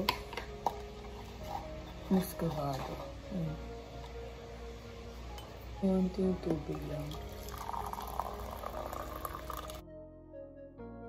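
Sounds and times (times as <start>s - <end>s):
background music: 0.0s - 11.0s
water pouring into a mug: 6.7s - 9.8s.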